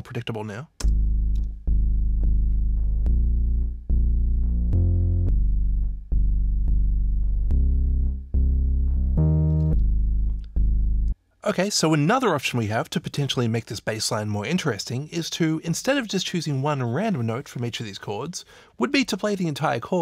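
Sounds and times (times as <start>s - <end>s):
synth bass line: 0.8s - 11.2s.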